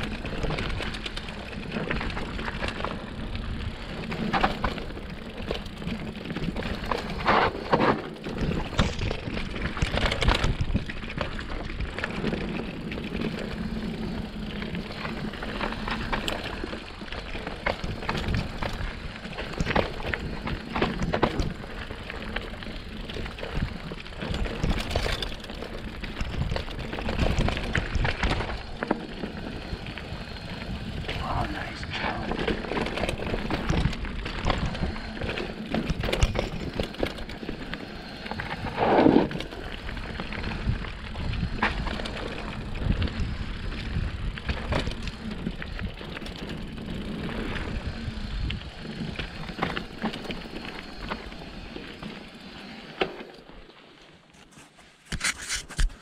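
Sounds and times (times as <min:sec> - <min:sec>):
bike knocking and rattling: 0:00.0 - 0:31.4, 0:32.0 - 0:56.0
bike tyres rushing on dirt: 0:00.0 - 0:55.1.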